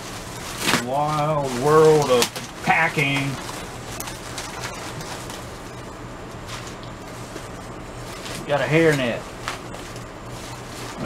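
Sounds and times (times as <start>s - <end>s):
plastic bags rustling: 0.0s - 11.0s
steady low hum: 0.0s - 11.0s.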